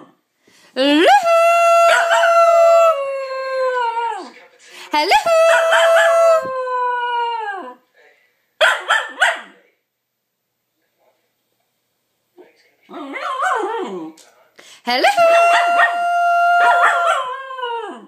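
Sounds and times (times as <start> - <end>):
puppy howling: 1.0 - 4.4, 5.1 - 7.8, 12.9 - 14.2, 15.0 - 18.0.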